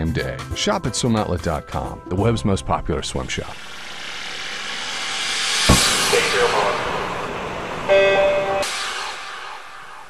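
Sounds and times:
noisy whoosh: 3.5 - 7.9.

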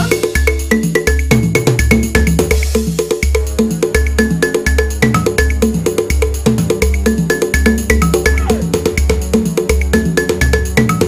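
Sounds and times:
electronic music with beat: 0.0 - 11.0.

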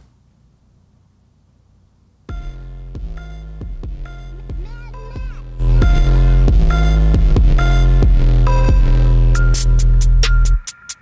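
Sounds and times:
hip-hop beat with deep bass: 2.3 - 11.0
distorted synth lead: 2.4 - 9.8.

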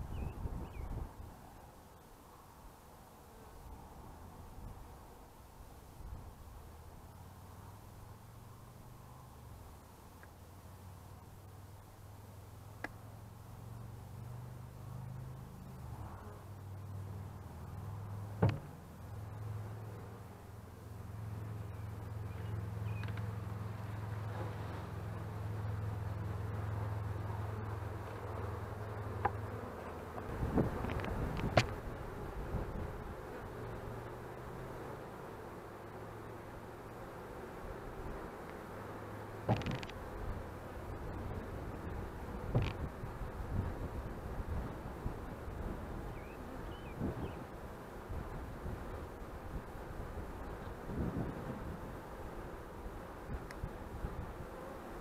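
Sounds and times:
bees buzzing: 7.4 - 55.0
knocks and rustles: 18.4 - 18.7, 39.5 - 40.0, 42.5 - 42.9.

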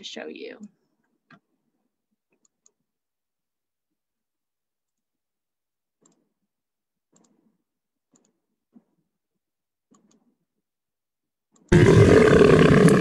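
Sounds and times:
faint clicks: 7.1 - 7.5.

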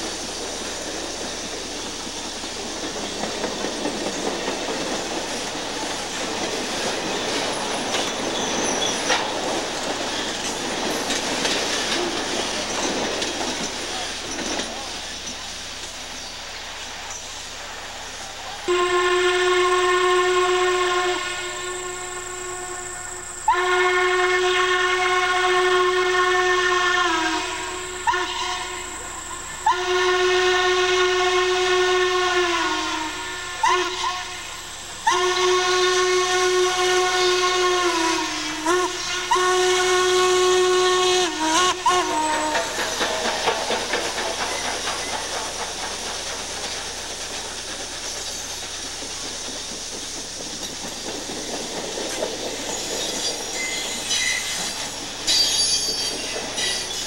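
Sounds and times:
passing train noise: 0.0 - 57.0
steam locomotive whistle blasts: 18.6 - 45.1, 52.7 - 57.0.

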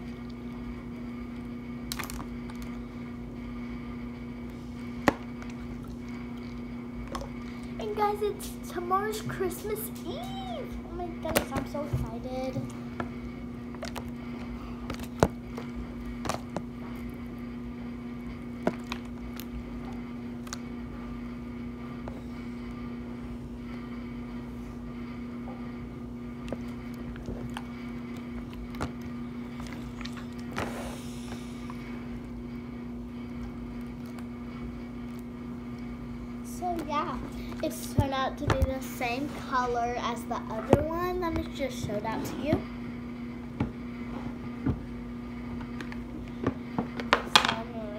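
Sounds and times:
steady low hum: 0.0 - 47.9.

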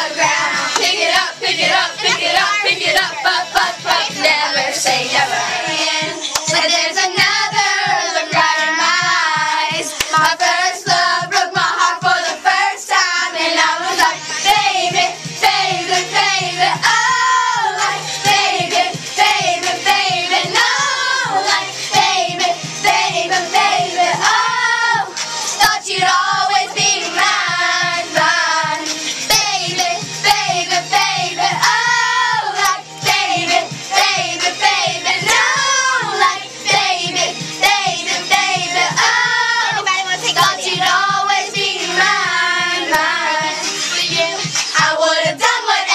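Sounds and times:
girls singing in unison: 0.0 - 45.9
pop song with steady beat: 0.0 - 45.9.

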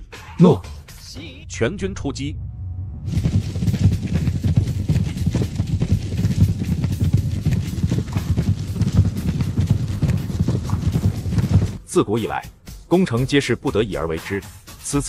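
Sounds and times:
many hooves galloping: 3.1 - 11.8.

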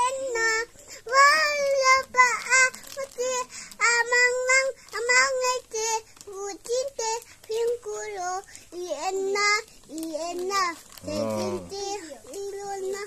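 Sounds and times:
boy singing in a high voice: 0.0 - 13.0.

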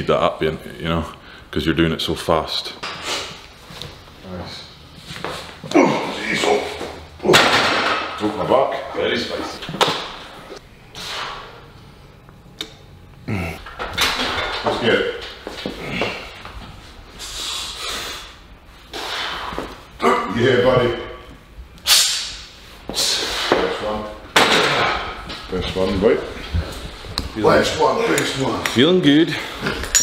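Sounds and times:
weightlifter grunting: 5.7 - 7.6, 13.2 - 13.6.

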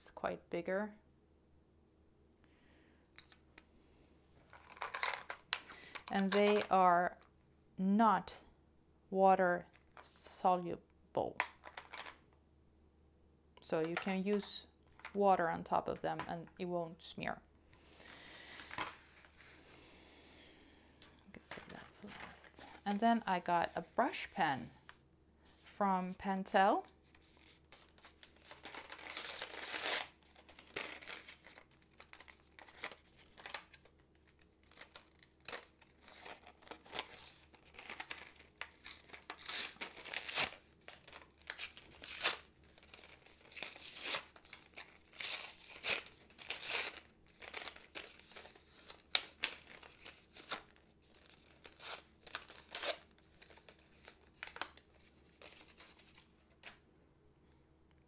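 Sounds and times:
plastic blister pack tearing: 27.4 - 56.2.

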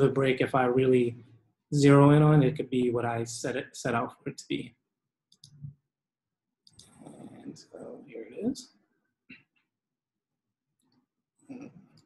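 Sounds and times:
faint low sound: 0.0 - 4.7.

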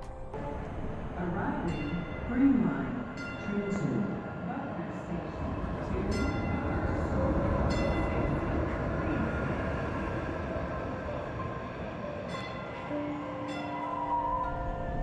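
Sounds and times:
light rail train rumbling: 0.0 - 15.0.

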